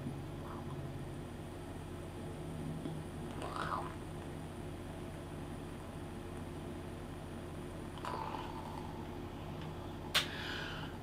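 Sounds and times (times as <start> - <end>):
low electrical hum: 0.0 - 11.0
person exhaling vapour: 10.1 - 11.0
faint breath sounds: 10.2 - 11.0.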